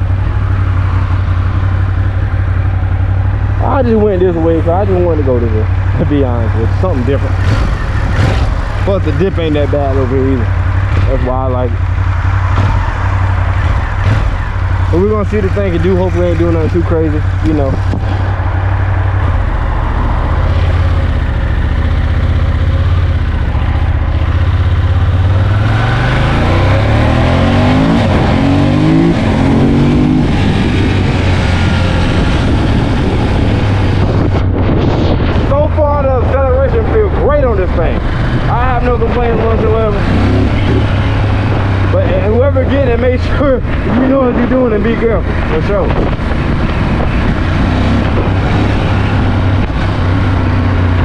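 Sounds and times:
motorcycle engine accelerating: 0.0 - 51.0.

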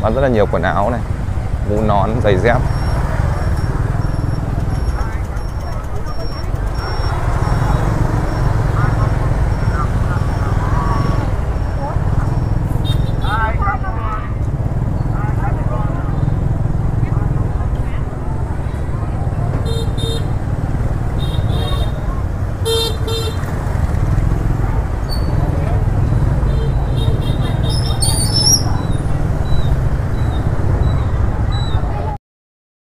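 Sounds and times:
motorbike engines passing: 0.0 - 32.2
voices of people: 0.0 - 32.2
motorbike horn toots: 12.8 - 13.5, 19.6 - 20.4, 21.2 - 23.6, 26.4 - 28.6.

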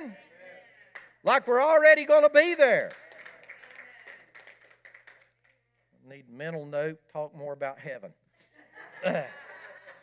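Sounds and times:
faint scattered clapping: 0.9 - 1.8, 2.8 - 5.6.

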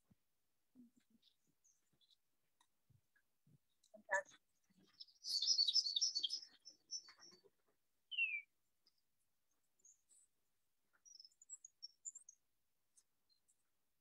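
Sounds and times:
songbirds singing: 0.8 - 13.8.

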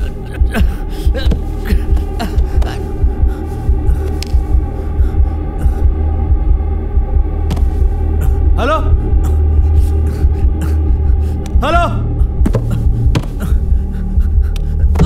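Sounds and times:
low droning hum with throbbing pulse: 0.0 - 15.0.

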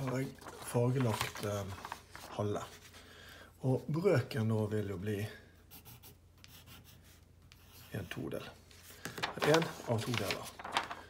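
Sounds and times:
pencil scratching on paper: 5.7 - 8.3.

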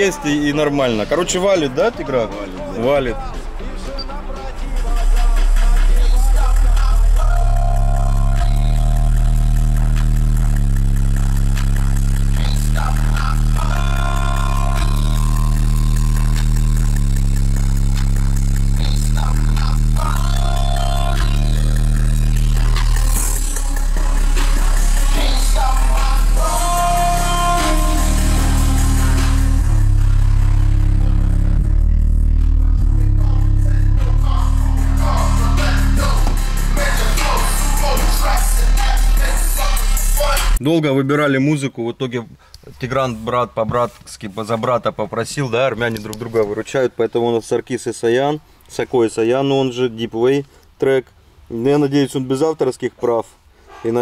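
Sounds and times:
music with heavy deep bass: 0.0 - 40.6.

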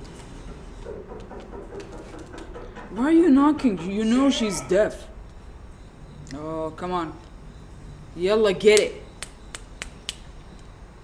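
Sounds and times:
finger snaps: 8.8 - 10.7.

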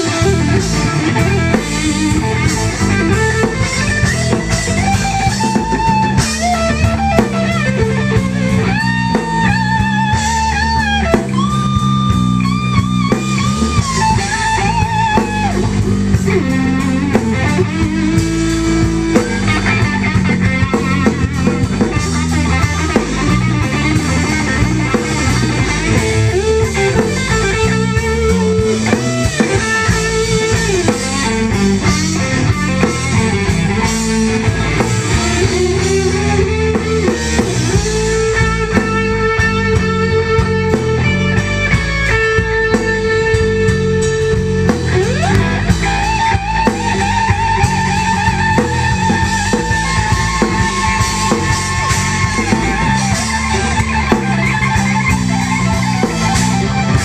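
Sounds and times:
drums: 0.0 - 57.0
electric guitar bending notes: 0.0 - 57.0.

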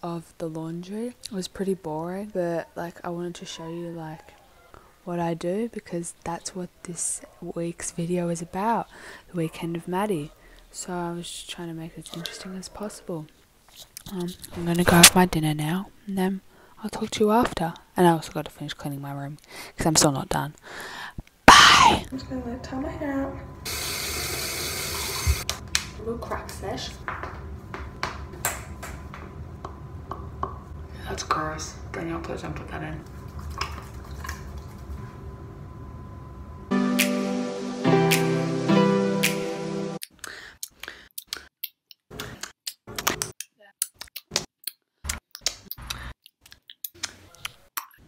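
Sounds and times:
tap water running: 23.7 - 25.5
knuckles cracking: 40.0 - 48.0.

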